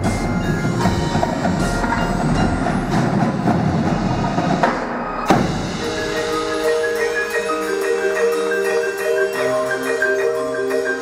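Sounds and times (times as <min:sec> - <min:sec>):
mallet keyboards: 0:00.0 - 0:04.7, 0:05.3 - 0:11.0
tenor drums: 0:00.0 - 0:11.0.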